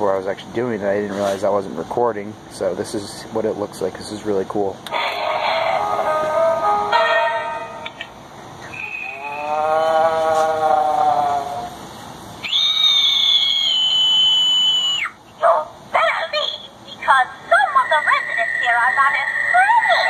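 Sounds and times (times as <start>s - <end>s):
howl-like electronic tone: 5.2s - 7.8s, 8.7s - 11.7s
high-pitched wail: 8.7s - 11.7s, 12.4s - 15.1s, 17.6s - 20.0s.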